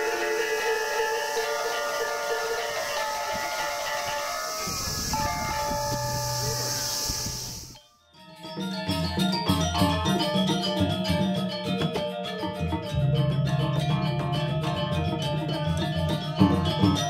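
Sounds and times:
steady hiss: 0:00.0 - 0:07.8
gamelan metallophones ringing: 0:00.0 - 0:17.0.

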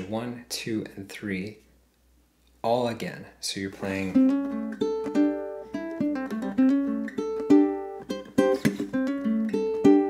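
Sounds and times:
ukulele fingerpicked riff: 0:03.8 - 0:10.0
percussive string slaps: 0:08.4 - 0:08.9.

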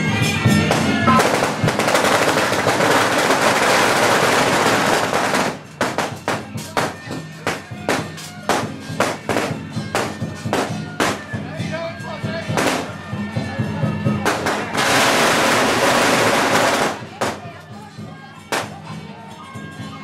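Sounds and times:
firecrackers crackling: 0:00.2 - 0:11.5, 0:12.4 - 0:13.1, 0:14.2 - 0:17.7, 0:18.5 - 0:18.9
sharp firecracker bangs: 0:00.6 - 0:11.3, 0:12.5 - 0:13.0, 0:14.3 - 0:17.5.

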